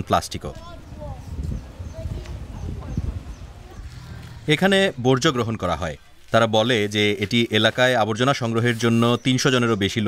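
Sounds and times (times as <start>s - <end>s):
faint distant voices: 0.4s - 10.0s.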